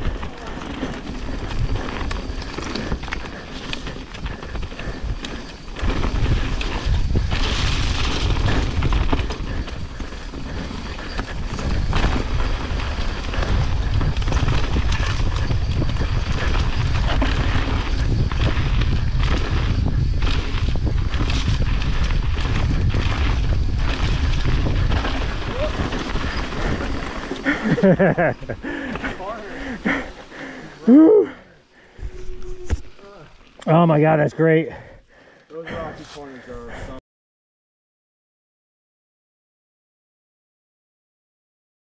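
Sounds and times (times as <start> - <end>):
bike clattering over roots: 0.0 - 30.9
wind buffeting microphone: 0.0 - 33.3
bike tyre noise on dirt: 0.0 - 37.0.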